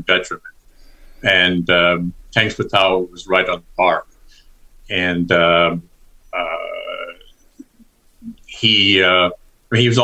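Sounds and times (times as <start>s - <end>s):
man saying uh: 0.0s - 0.5s, 1.2s - 4.0s, 4.9s - 5.8s, 6.4s - 7.2s, 8.2s - 10.0s.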